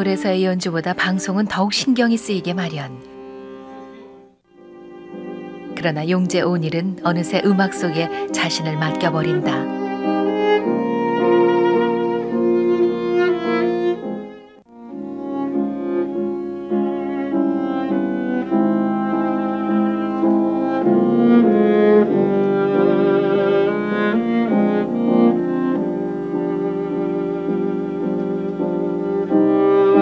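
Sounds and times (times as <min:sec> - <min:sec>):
bowed viola melody: 0:00.0 - 0:30.0.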